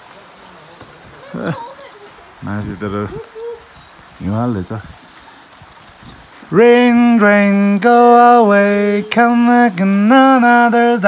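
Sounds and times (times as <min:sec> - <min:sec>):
low voice chanting: 0:06.5 - 0:11.0.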